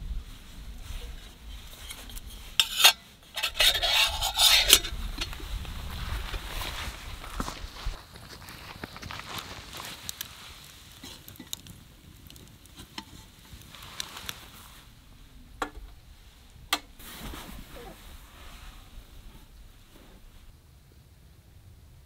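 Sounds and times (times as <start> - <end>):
wood fire crackling: 0.0 - 20.5
sharp pops from fire: 9.8 - 14.8.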